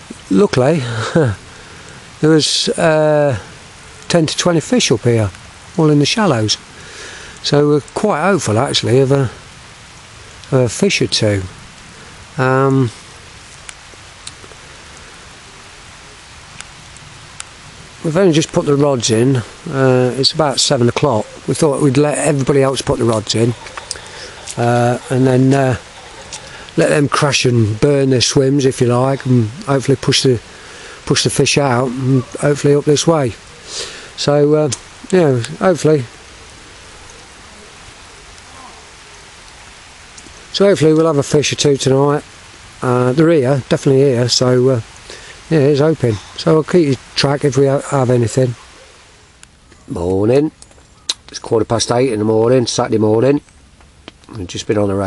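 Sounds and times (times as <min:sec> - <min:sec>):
rain falling: 0:00.0 - 0:55.0.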